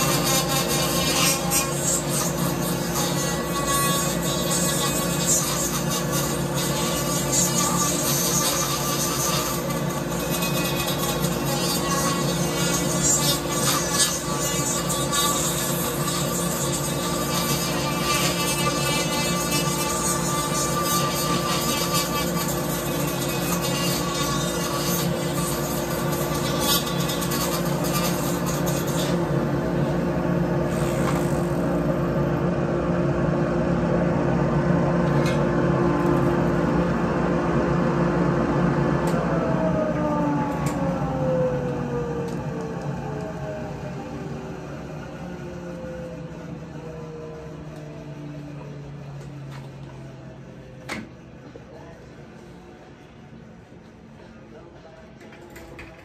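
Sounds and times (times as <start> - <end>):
grinder motor running: 0.0 - 32.4.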